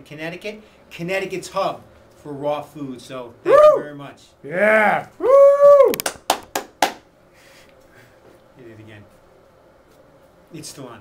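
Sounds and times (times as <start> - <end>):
hand claps: 5.9 - 7.1.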